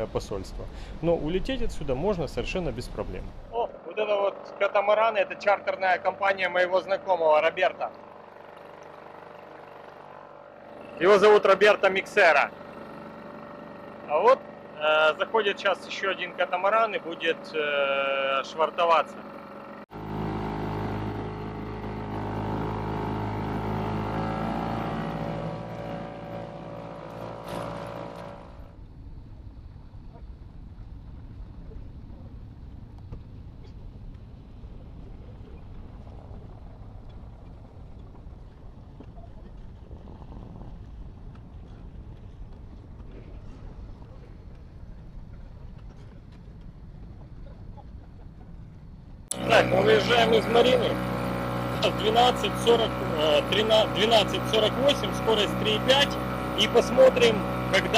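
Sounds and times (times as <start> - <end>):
outboard motor running: 2.9 - 29.0, 29.6 - 57.9.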